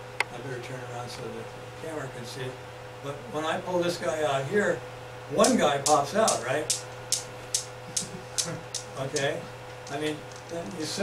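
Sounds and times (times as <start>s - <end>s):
steel balls clacking: 5.4s - 10.6s.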